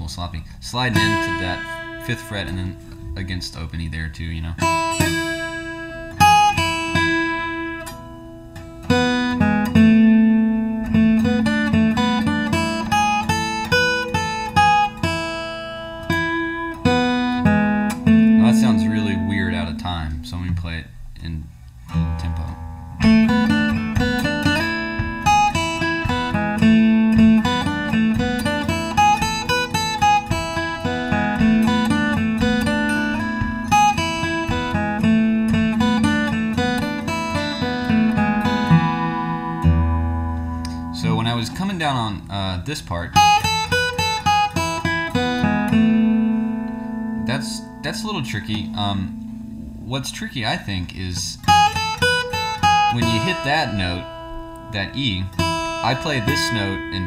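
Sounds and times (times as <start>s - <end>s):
acoustic guitar picking a melody: 0.0s - 57.0s.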